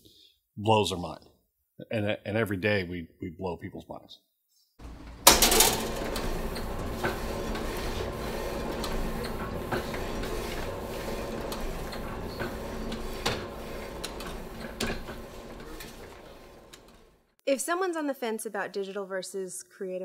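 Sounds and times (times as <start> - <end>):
printing press clatter: 4.8 - 17.3.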